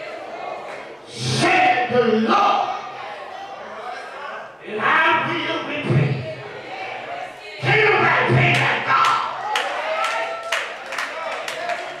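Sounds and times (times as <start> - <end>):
congregation calling out: 0.0 - 12.0
people clapping a steady beat: 8.5 - 12.0.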